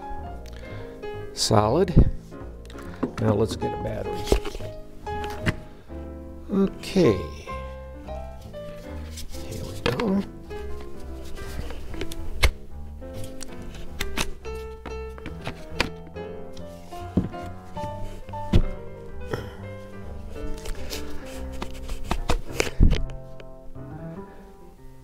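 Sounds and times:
background music with held notes: 0.0 - 25.0
sharp plastic knocks: 17.1 - 18.8.

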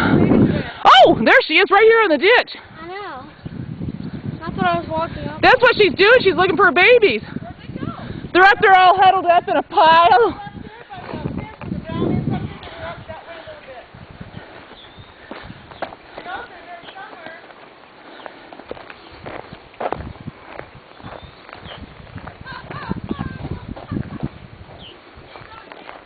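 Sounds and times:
footsteps on dirt road: 10.2 - 26.0.

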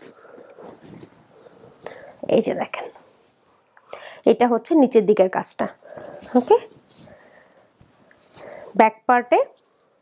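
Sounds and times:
woman speaking softly: 2.2 - 3.0, 4.3 - 6.7, 8.7 - 9.6.

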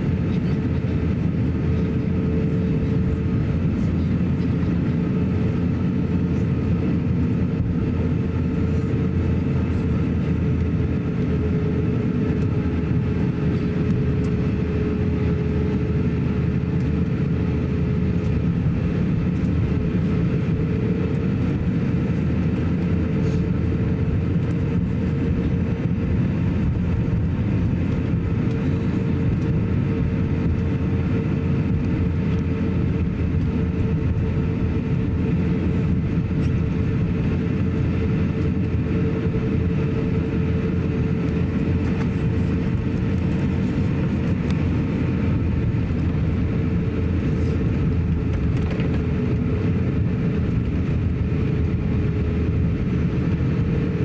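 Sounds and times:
aircraft engines low rumble: 0.0 - 54.0
mid-pitched hum: 0.0 - 54.0.

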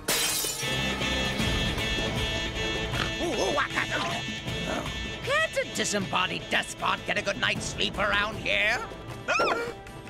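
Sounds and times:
crystal shattering crash: 0.0 - 1.0
dramatic music: 0.6 - 10.0.

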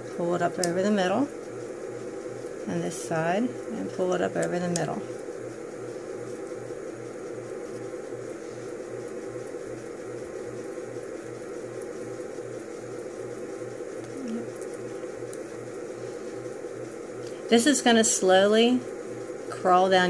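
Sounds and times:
mechanical hum with low throb: 0.0 - 20.0.

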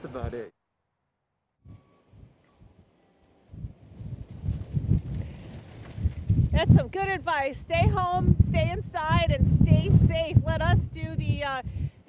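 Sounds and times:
wind buffeting microphone: 1.7 - 12.0.

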